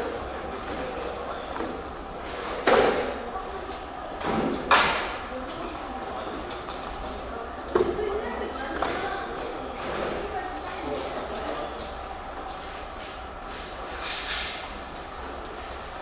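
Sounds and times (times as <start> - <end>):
people chattering: 0.0 - 12.4.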